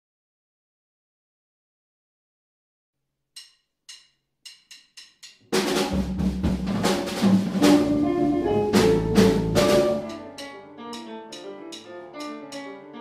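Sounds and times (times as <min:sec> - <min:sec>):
drum and cymbal accents: 0:03.4 - 0:12.7
latin jazz band playing: 0:05.9 - 0:13.0
count-in clicks: 0:07.6 - 0:12.7.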